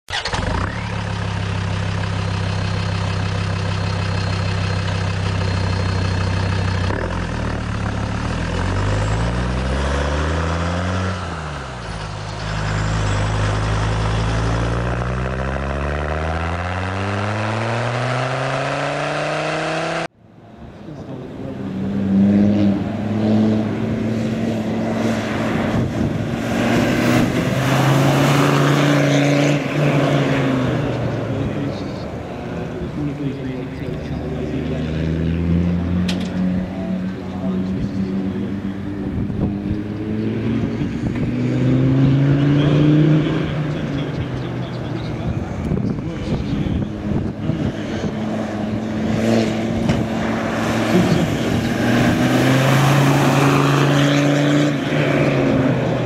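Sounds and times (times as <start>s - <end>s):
engine revving: 0.1s - 20.2s, 21.0s - 56.0s
diesel vehicle driving on dirt: 0.1s - 56.0s.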